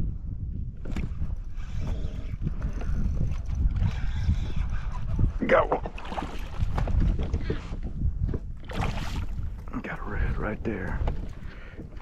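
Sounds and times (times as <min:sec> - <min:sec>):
wind rumbling on microphone: 0:00.0 - 0:12.0
water lapping against kayak hull: 0:00.8 - 0:12.0.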